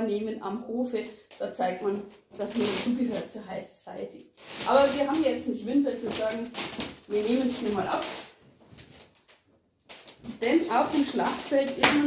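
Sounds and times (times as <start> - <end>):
heavy cloth rustling: 4.4 - 9.0.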